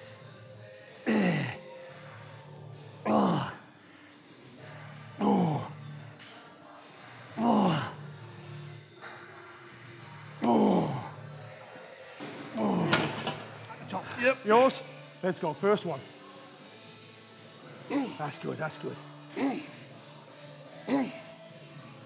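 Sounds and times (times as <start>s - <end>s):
man groaning with effort: 3.0s - 3.6s.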